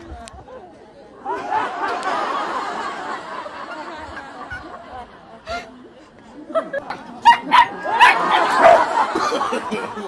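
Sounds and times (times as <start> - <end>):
dog barking: 7.2 - 8.9.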